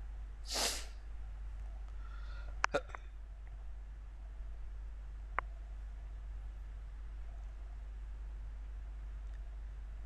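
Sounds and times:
steady low hum: 0.0 - 10.0
person breathing through nose: 0.5 - 0.9, 2.0 - 2.6.

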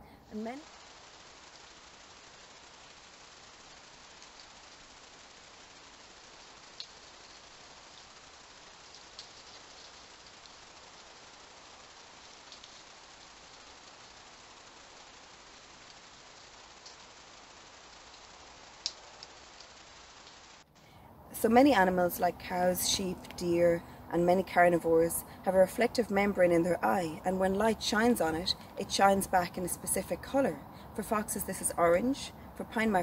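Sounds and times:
faint steady hiss: 0.0 - 33.0.

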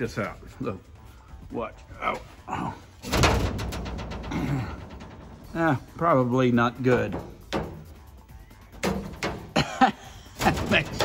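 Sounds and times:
metal panel crashing onto frame: 3.0 - 6.1, 10.4 - 11.0.

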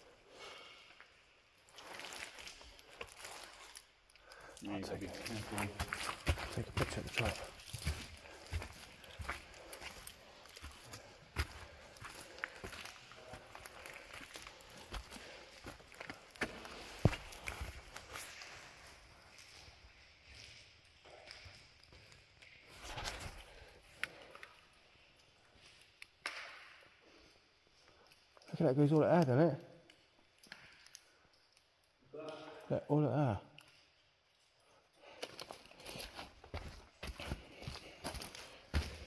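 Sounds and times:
stones clicking underfoot: 1.6 - 19.8, 29.8 - 32.0, 33.6 - 39.0
footsteps on stone rubble: 4.7 - 19.7, 35.1 - 39.0.

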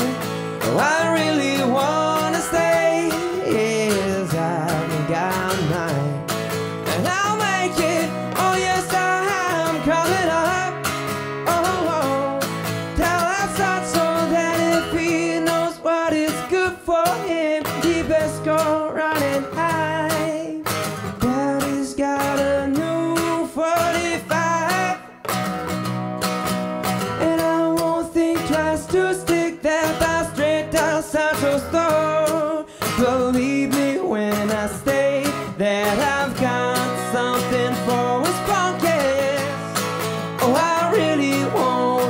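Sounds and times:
man singing: 0.0 - 25.4, 27.0 - 42.0
strummed acoustic guitar: 0.0 - 42.0.

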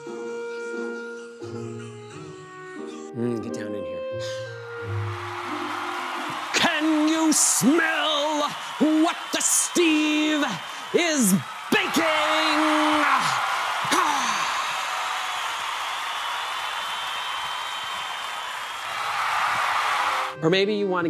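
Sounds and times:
man raspy growling yell: 11.8 - 14.8.

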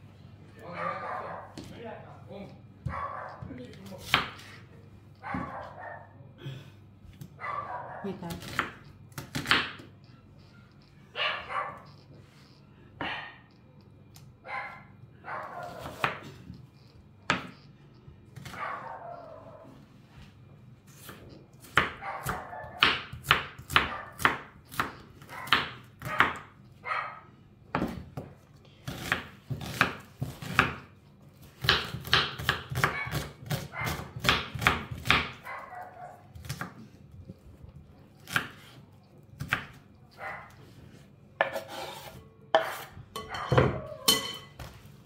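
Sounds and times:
knife chopping on wooden board: 2.8 - 4.5, 8.3 - 9.9, 15.6 - 16.4, 21.0 - 26.4, 28.9 - 35.4, 38.2 - 38.8, 41.4 - 43.6.

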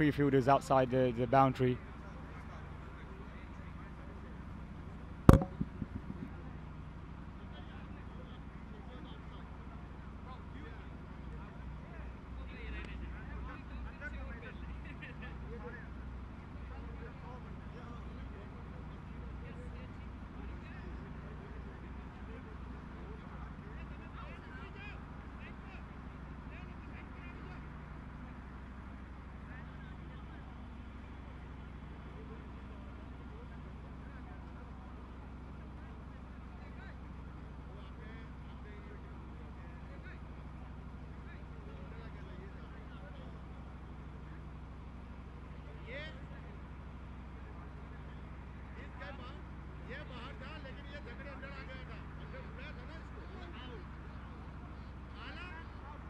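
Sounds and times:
distant voices of players talking: 0.0 - 56.0
steady low hum: 4.9 - 6.8
sharp knock: 5.3 - 6.3.

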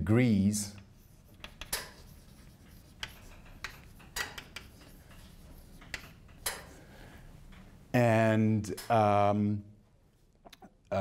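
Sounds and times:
chalk scratching on blackboard: 0.7 - 6.8
chalk tapping on blackboard: 0.7 - 6.8.

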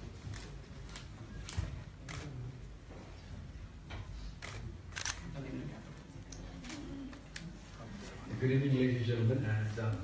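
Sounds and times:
murmur of voices: 0.1 - 10.0
camera shutters clicking: 0.3 - 2.4, 4.4 - 5.3.

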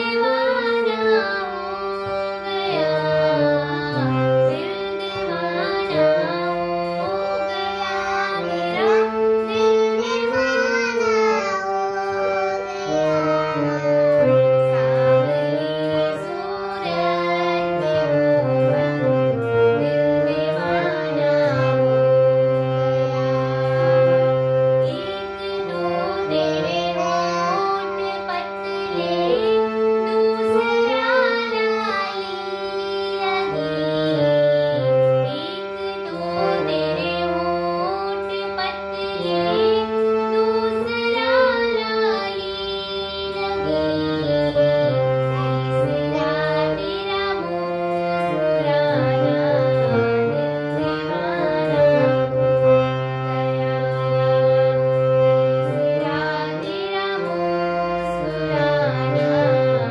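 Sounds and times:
girls singing: 0.0 - 59.9
harmonium chords: 0.0 - 59.9.

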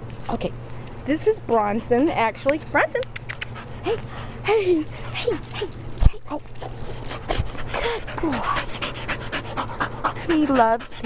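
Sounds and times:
dog whining: 3.4 - 9.9
dog panting: 3.4 - 11.0.

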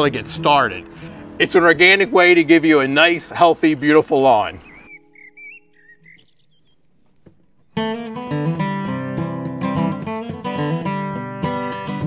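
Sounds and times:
songbird warbling: 4.4 - 8.0.

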